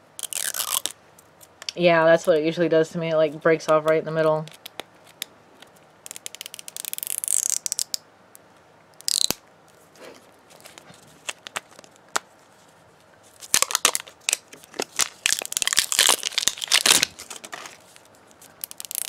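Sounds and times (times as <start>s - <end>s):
plastic wrapping crinkling and tearing: 0.2s - 0.9s, 10.5s - 12.2s, 13.3s - 19.0s.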